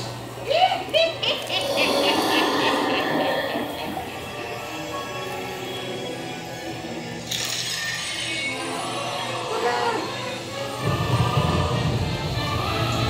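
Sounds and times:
ride soundtrack music: 0:07.9 - 0:13.0.

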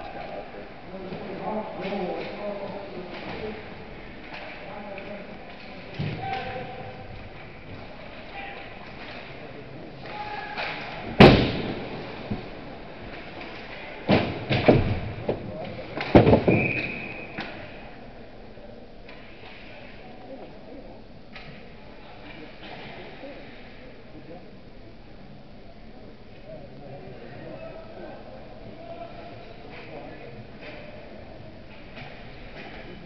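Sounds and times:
loud sharp crack: 0:10.3 - 0:12.2
knocks and thuds on boards and ice: 0:14.1 - 0:16.9.

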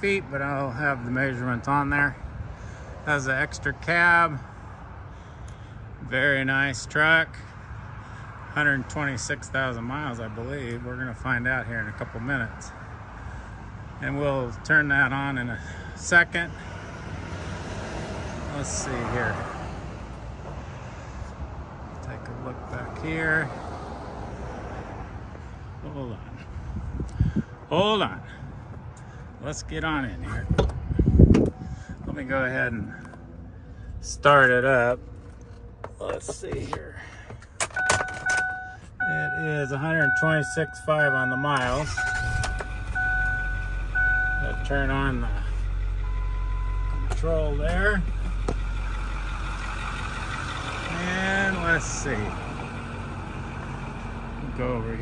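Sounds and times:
diesel engine idling: 0:00.0 - 0:17.4, 0:25.1 - 0:55.0
low outdoor rumble: 0:38.7 - 0:55.0.

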